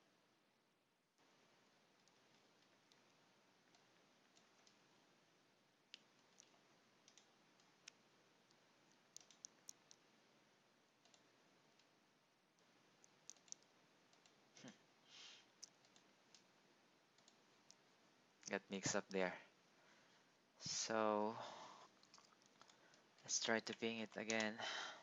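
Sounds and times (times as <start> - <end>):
faint computer mouse clicks: 5.9 - 8.6, 9.2 - 10.0, 11.0 - 11.9, 13.0 - 14.4, 17.2 - 17.8.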